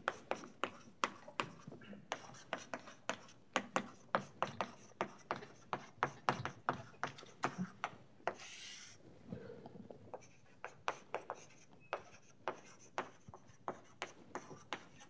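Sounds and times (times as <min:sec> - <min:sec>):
chalk tapping and scratching on blackboard: 0:00.0 - 0:09.0, 0:10.1 - 0:15.0.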